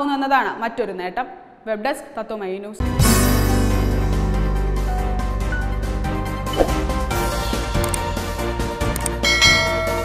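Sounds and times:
bright bell chime: 9.2s - 10.0s.

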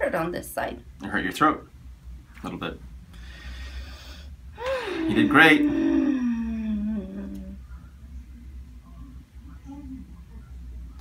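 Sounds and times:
woman breathing out: 3.2s - 7.5s.

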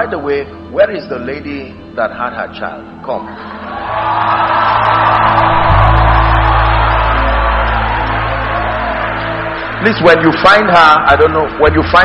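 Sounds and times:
congregation cheering and shouting: 3.2s - 11.3s.

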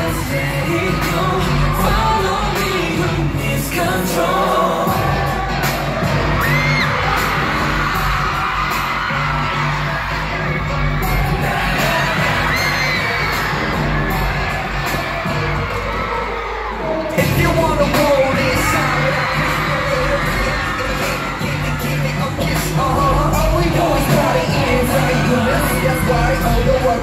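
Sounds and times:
fans screaming and cheering: 0.0s - 27.0s
pop music with heavy bass beat: 0.0s - 27.0s.

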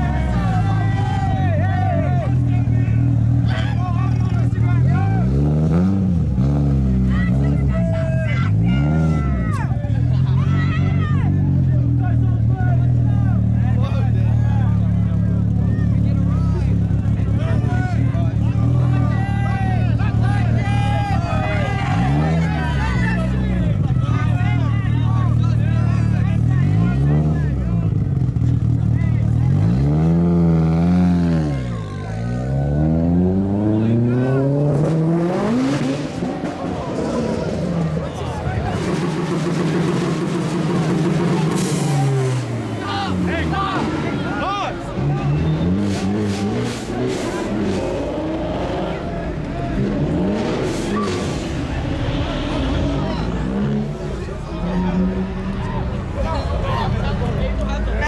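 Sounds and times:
car engine revving: 0.0s - 58.0s
crowd voices: 0.0s - 58.0s.

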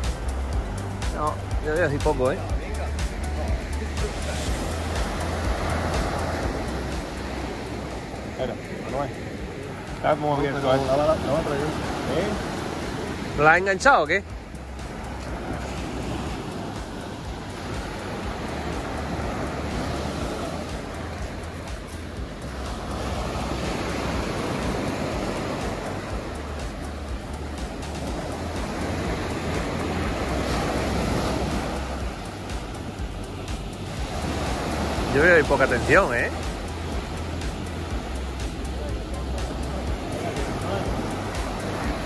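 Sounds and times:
ocean surf breaking: 0.0s - 42.0s.

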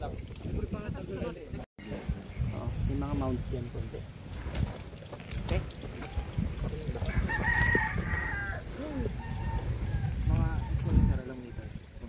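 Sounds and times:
rooster crowing: 7.0s - 11.1s.

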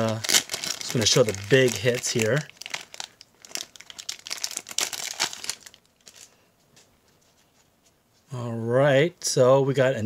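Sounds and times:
plastic wrap crinkling: 0.0s - 6.4s.

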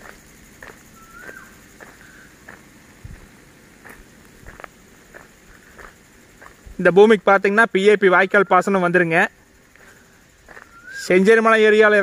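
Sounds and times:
whistled bird call: 1.0s - 2.3s, 10.5s - 11.3s.

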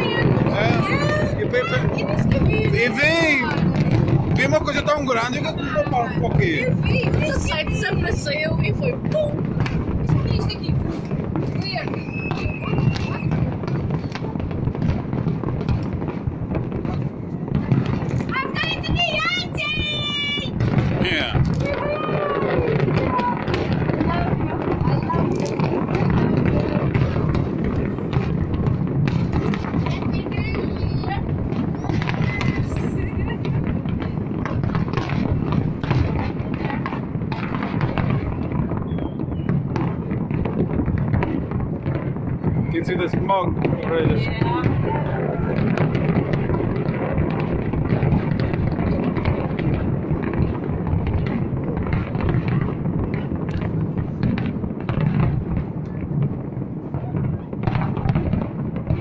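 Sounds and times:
voices: 0.0s - 14.9s, 16.6s - 38.9s, 42.4s - 48.0s
fireworks bangs and crackles: 0.0s - 59.0s
high wavering whistles: 12.0s - 13.3s.

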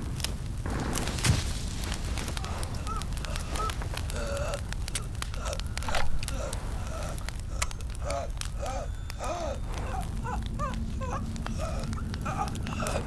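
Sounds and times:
fire crackling: 0.0s - 13.0s
steady low rumble: 0.0s - 13.0s.

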